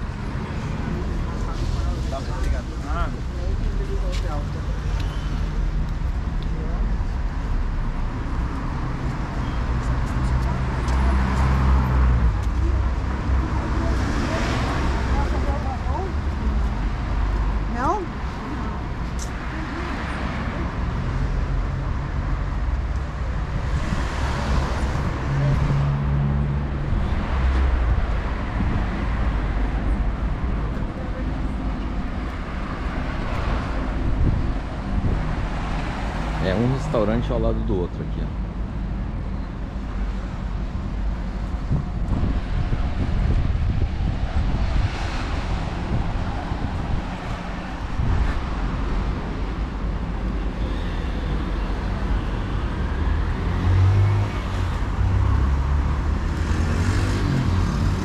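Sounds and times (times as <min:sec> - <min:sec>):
cars passing by: 0:00.0 - 0:58.0
traffic rumble: 0:00.0 - 0:58.0.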